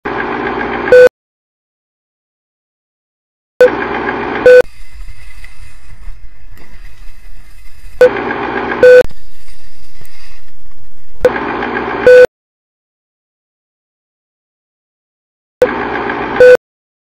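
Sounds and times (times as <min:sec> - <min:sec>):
short beep tone: 0:00.9 - 0:01.1, 0:04.4 - 0:04.7, 0:08.8 - 0:09.1, 0:12.0 - 0:12.3, 0:16.4 - 0:16.6.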